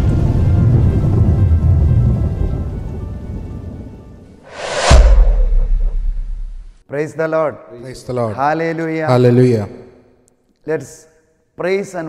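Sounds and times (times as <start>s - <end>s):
rumbling thunder and rain: 0.0s - 3.5s.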